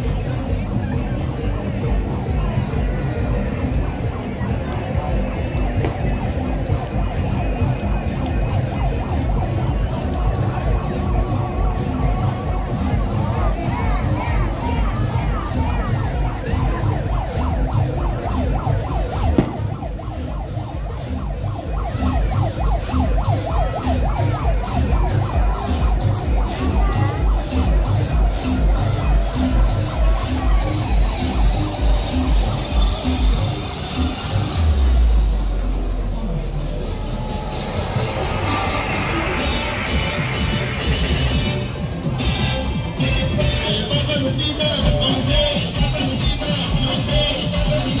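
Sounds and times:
music with heavy low beat: 0.0 - 48.0
siren-like wails: 4.1 - 42.0
sharp pop: 19.3 - 19.7.

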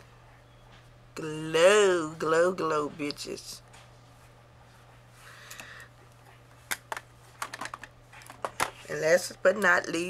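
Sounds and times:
plastic items clicking and tapping: 6.7 - 8.8.

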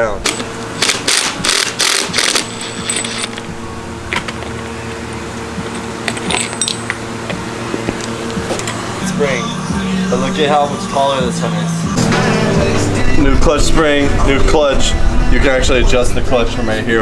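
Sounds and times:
small metallic clinks: 6.0 - 7.0.

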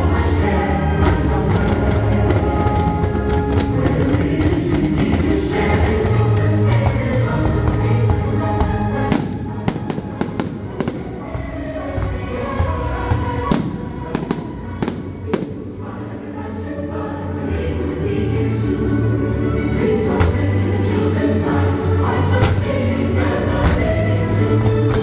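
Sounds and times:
choral music: 0.0 - 25.0
fireworks bursting: 1.1 - 16.0.

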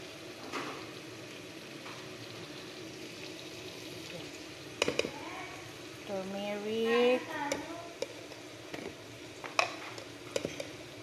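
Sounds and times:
jars and lids clicking: 9.6 - 10.8.

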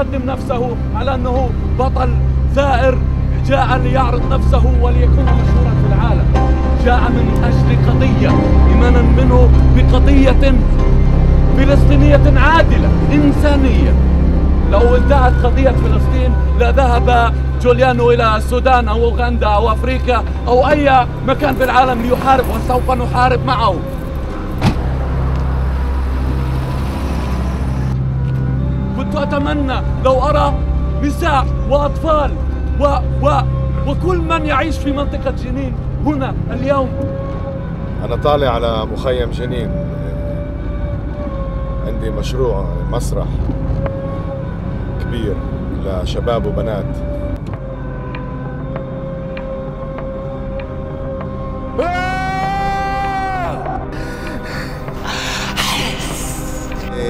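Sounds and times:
steady droning tone: 0.0 - 51.8
car engine hum: 0.0 - 57.0.

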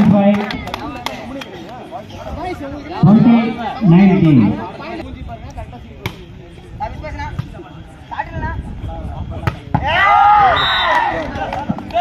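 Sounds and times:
spectator chatter: 0.0 - 12.0
crowd shouting: 9.8 - 12.0.

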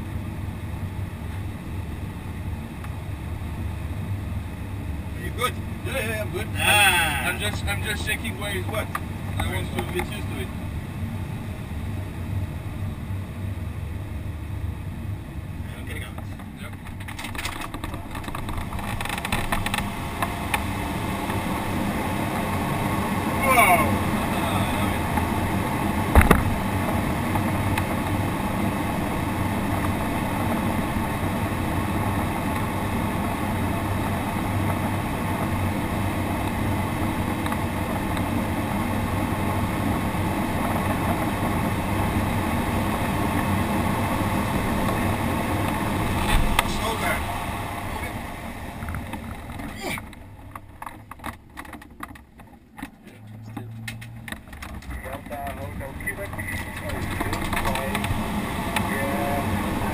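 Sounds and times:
airflow rushing over glider canopy: 17.4 - 51.2, 54.2 - 59.9
sharp knock: 26.1 - 26.5.

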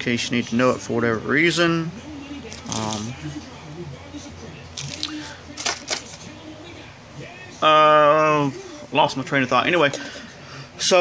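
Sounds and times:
clicks and rustles of handling: 4.8 - 6.2.

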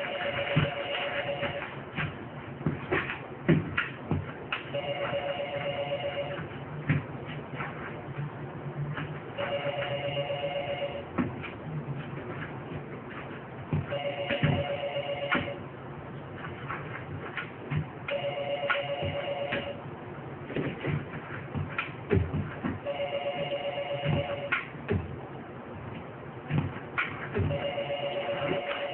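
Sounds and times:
warbling electronic phone ring: 0.0 - 1.7, 4.8 - 6.4, 9.4 - 11.0, 13.9 - 15.6, 18.1 - 19.8, 22.9 - 24.5, 27.5 - 28.9.

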